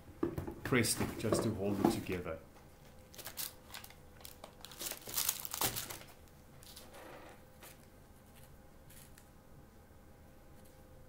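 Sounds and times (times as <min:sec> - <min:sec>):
paper crinkling and rustling: 0:03.1 - 0:07.0.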